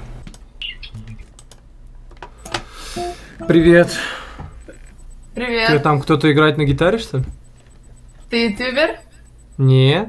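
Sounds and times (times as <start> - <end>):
low steady hum: 2.3 - 9.8
faint clicks and taps: 6.2 - 9.6.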